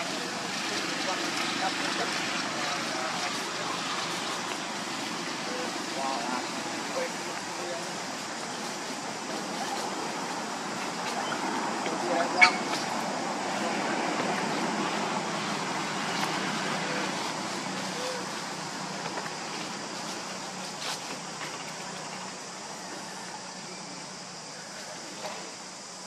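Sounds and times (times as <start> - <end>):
rushing outdoor background noise: 0.0 - 26.0.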